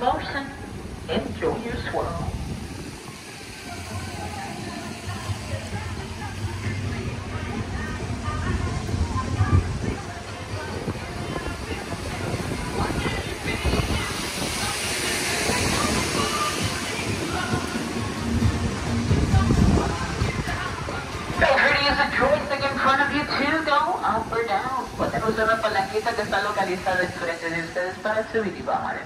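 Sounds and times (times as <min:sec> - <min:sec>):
hiss of rushing air: 0:00.0 - 0:23.6, 0:24.2 - 0:28.5
music playing: 0:00.0 - 0:29.0
people's voices: 0:00.0 - 0:29.0
wind buffeting microphone: 0:00.0 - 0:29.0.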